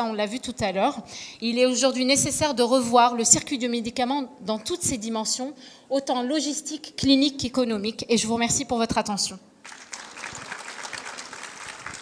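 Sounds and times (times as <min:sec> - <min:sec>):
audience applauding: 0:09.6 - 0:12.0.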